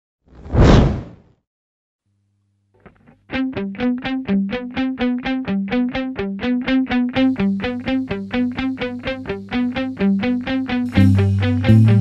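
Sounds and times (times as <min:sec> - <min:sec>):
whoosh sound effect: 0:00.4 - 0:01.2.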